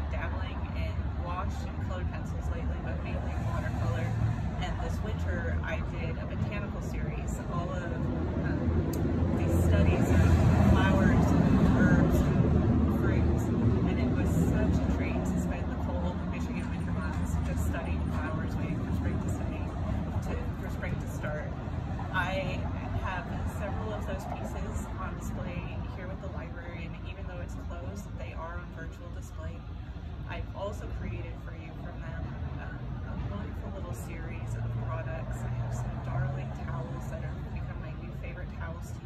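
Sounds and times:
steady low rumble: 0.0 - 39.0
woman talking: 0.0 - 39.0.

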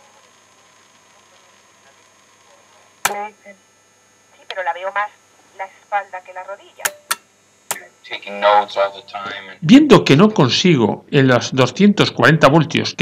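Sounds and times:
sharp click: 6.8 - 7.9
speech from radio loudspeaker: 7.8 - 9.7.

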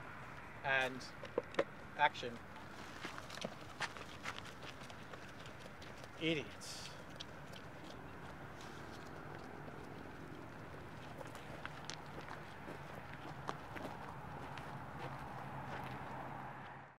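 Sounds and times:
outdoor background noise: 0.0 - 16.9.

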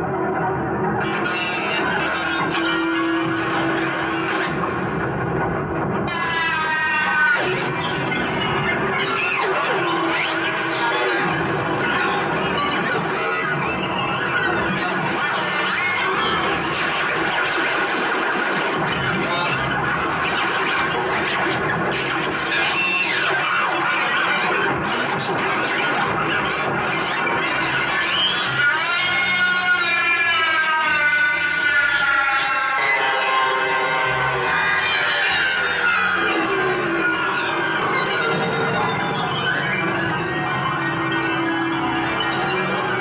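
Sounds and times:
noisy experimental electronic music: 0.0 - 43.0
squealing tone sliding down: 26.6 - 43.0.

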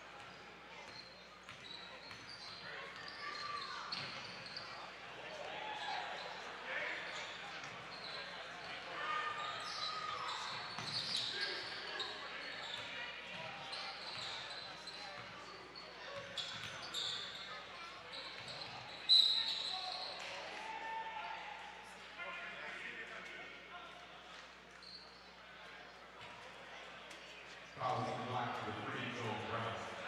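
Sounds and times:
chatter of players and crowd: 0.0 - 30.0.

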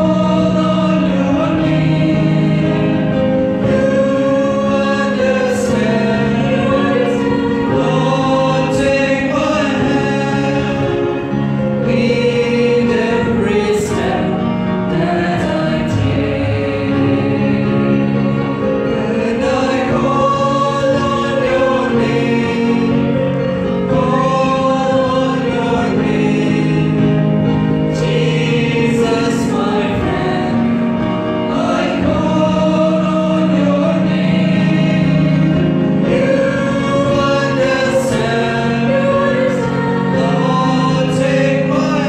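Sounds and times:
choir singing gospel song: 0.0 - 42.0.

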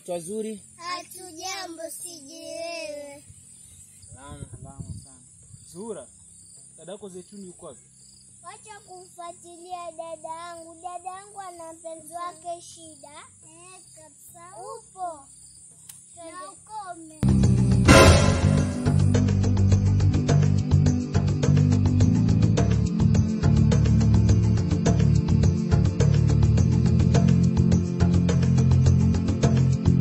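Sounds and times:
children talking quietly: 0.8 - 3.4, 8.4 - 17.2.

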